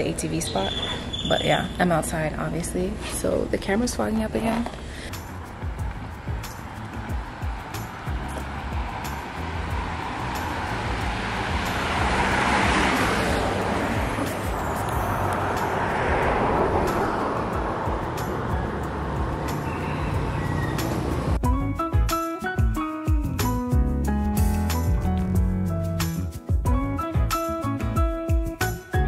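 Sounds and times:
street traffic hiss: 0:04.7 - 0:21.4
background music: 0:04.9 - 0:29.0.

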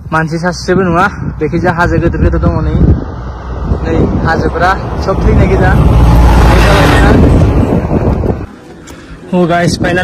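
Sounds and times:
wind on microphone: 0:00.0 - 0:10.0
motor vehicle passing: 0:02.4 - 0:09.5.

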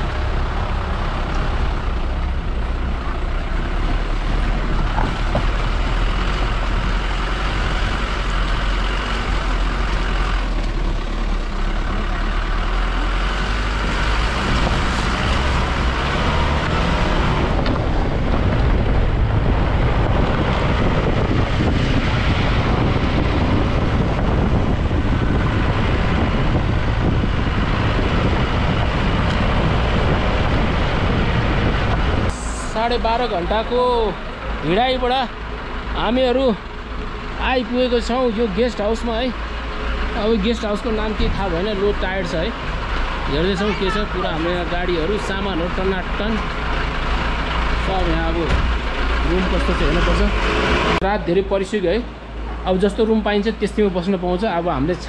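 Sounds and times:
jeep engine rumble: 0:00.0 - 0:55.0.

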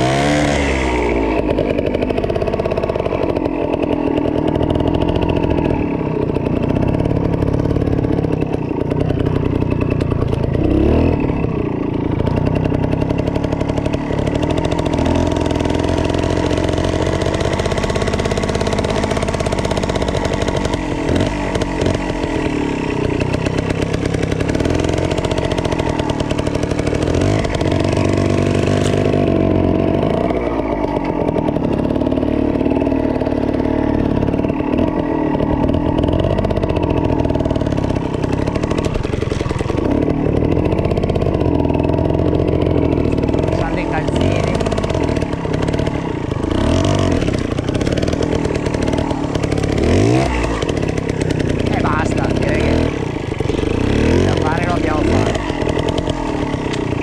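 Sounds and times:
two-stroke motorcycle engine: 0:00.0 - 0:57.0.

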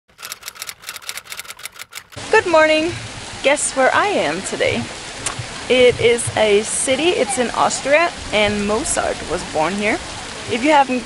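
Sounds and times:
sharp clicks: 0:00.1 - 0:02.2.

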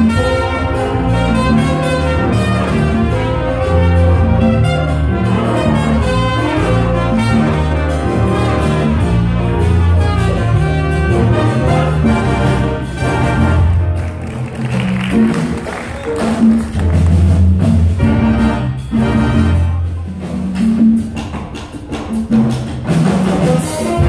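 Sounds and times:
jazz big band playing: 0:00.0 - 0:24.0.

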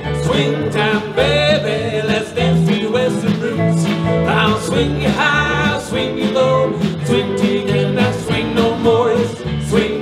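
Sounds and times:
western swing band playing: 0:00.0 - 0:10.0.

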